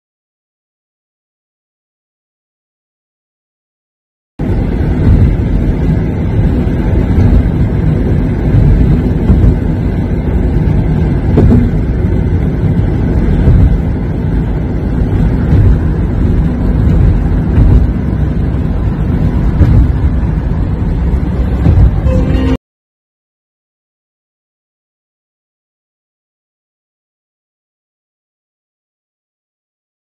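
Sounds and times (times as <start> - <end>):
car cabin road and wind rumble: 4.4 - 22.6.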